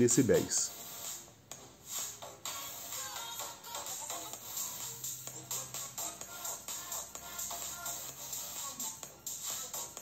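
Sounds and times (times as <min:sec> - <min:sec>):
faint music leaking from headphones: 0:00.0 - 0:10.0.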